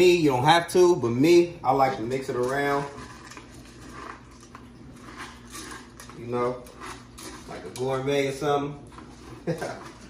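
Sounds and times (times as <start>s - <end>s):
spoon stirring food in metal bowl: 0.4s - 10.0s.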